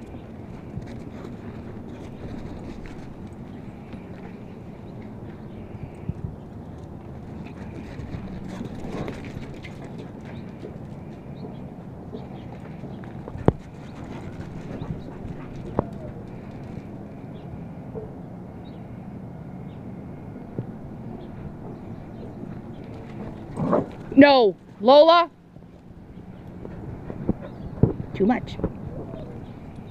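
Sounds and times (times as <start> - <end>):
dogs paws patting on turf: 0.3 - 16.9.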